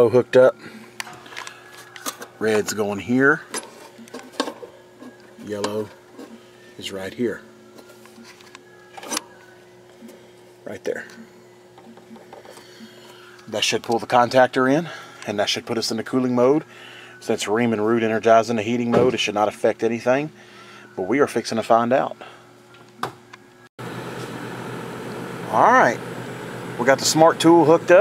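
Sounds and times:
steady low hum: 0:00.0 - 0:28.0
machinery humming: 0:23.8 - 0:28.0.

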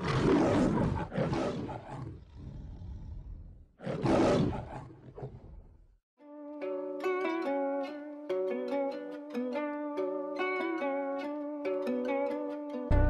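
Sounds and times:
lion roaring: 0:00.0 - 0:05.7.

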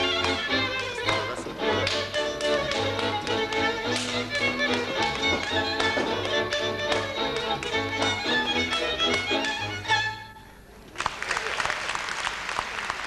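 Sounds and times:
dancer's feet tapping on stage: 0:00.0 - 0:09.9
folk string band with fiddle: 0:00.0 - 0:10.6.

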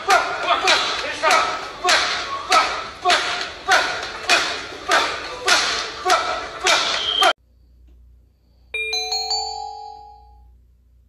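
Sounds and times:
bell-like chime: 0:08.8 - 0:10.5.

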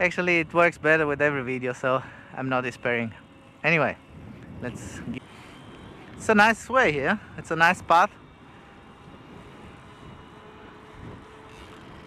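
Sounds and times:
bicycle tyre noise: 0:00.0 - 0:12.0
muffled wind noise: 0:00.0 - 0:12.0.

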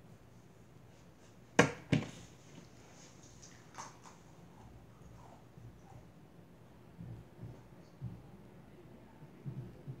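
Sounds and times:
sharp knocks on tabletop: 0:01.6 - 0:02.1.

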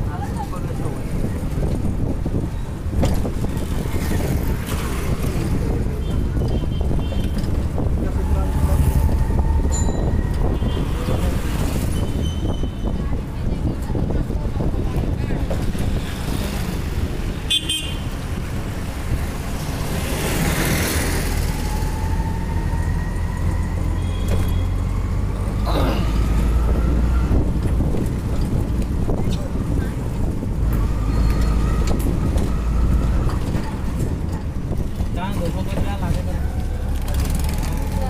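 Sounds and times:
road noise: 0:00.0 - 0:38.0.

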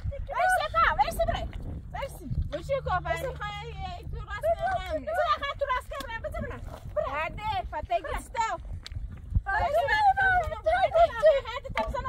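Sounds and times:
women's high-pitched cries: 0:09.6 - 0:11.8.

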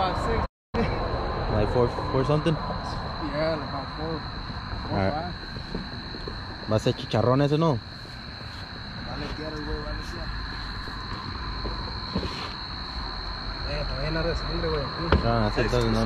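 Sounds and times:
night insects trilling: 0:00.0 - 0:16.0
men talking quietly: 0:09.0 - 0:10.4, 0:13.6 - 0:16.0.

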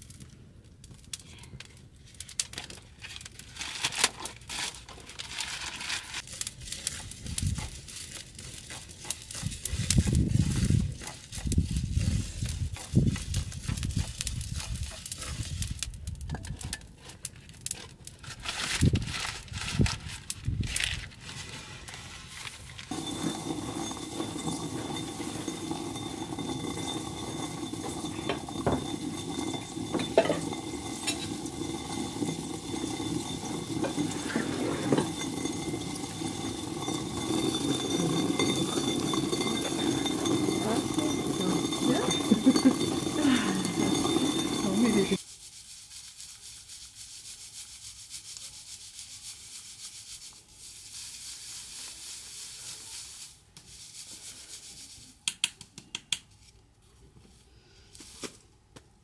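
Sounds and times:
stone quern grinding grain: 0:03.2 - 0:55.2.

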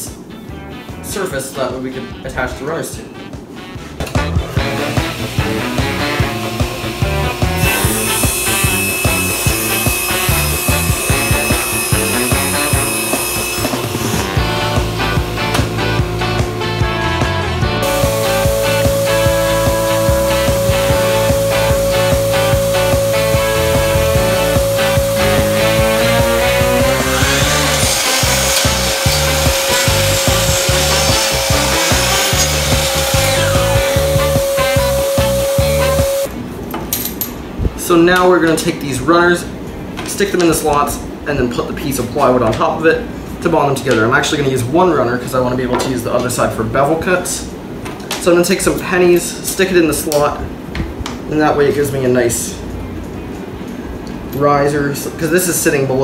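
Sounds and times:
background music with steady beat: 0:00.0 - 0:36.3
table saw cutting plywood: 0:04.6 - 0:36.3
miter saw cutting plastic: 0:04.7 - 0:16.0, 0:17.8 - 0:36.3.

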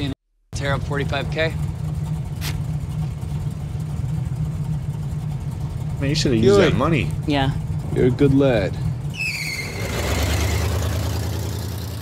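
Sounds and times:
car engine drone in cabin: 0:00.6 - 0:12.0.

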